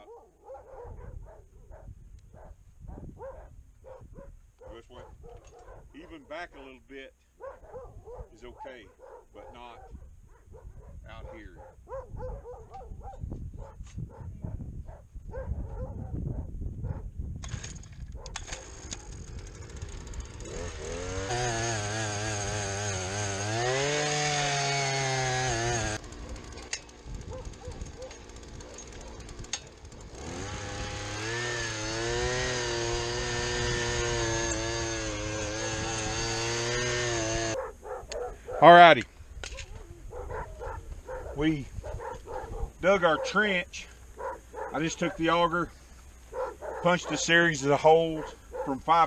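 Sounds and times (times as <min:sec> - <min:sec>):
earth auger engine boring: 0:17.4 - 0:37.6.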